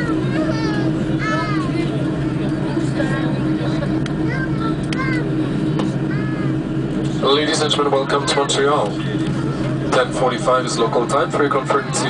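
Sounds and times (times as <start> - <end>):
aircraft engines humming in cabin: 0.0 - 12.0
passenger voices: 0.0 - 12.0.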